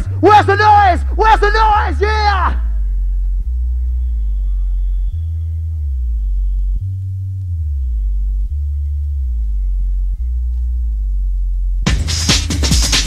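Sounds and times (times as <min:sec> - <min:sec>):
deep bass synth sliding notes: 0:00.0 - 0:13.0.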